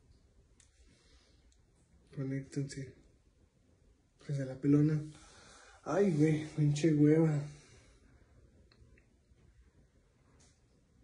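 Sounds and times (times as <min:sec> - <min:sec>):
soft clicks: 0:00.1 - 0:00.8, 0:10.3 - 0:10.8.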